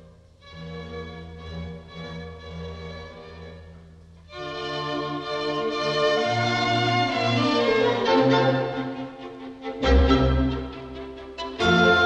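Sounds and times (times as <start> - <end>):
low cello notes: 0.0 - 12.0
sustained violin notes: 7.4 - 12.0.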